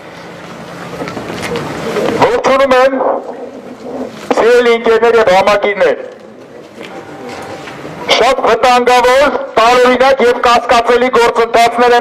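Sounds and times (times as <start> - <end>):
faint crowd voices: 0.8 - 5.0, 5.9 - 8.4.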